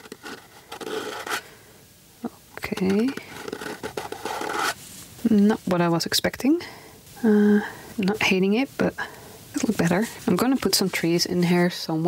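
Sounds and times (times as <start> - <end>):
palette knife scraping canvas: 0.0 - 1.5, 2.7 - 4.8.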